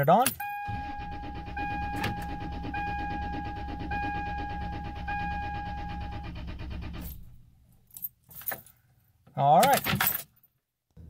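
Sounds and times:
dashboard warning chime beeping: 0.4s - 7.3s
starter cranking engine: 0.7s - 7.4s.

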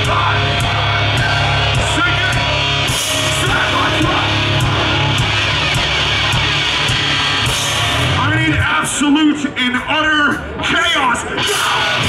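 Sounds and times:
metal band playing: 0.0s - 12.0s.

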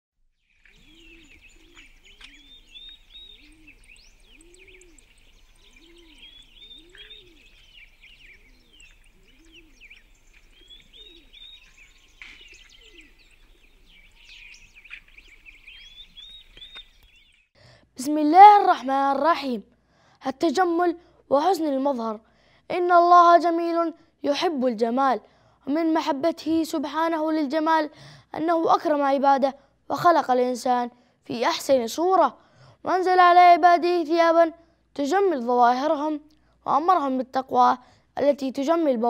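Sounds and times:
small birds chirping: 0.2s - 19.5s
low cooing call: 0.7s - 16.8s.

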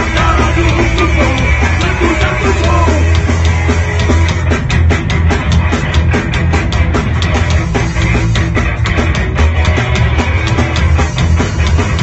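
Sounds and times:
bass guitar: 0.0s - 12.0s
distorted electric guitars: 0.0s - 12.0s
drum kit fast beat: 0.0s - 12.0s.

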